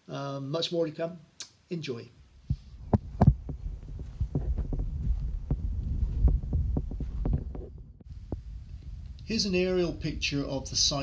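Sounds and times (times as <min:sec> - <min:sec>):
soft knocks on microphone: 0:02.4 - 0:08.5
microphone rumble: 0:02.4 - 0:11.0.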